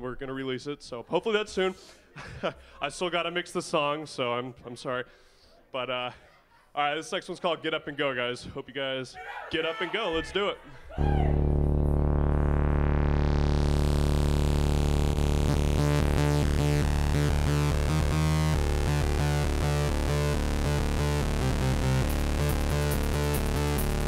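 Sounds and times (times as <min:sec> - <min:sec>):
held synthesizer chord: 0:11.0 - 0:24.0
rhythmic pulsing pattern: 0:11.3 - 0:24.0.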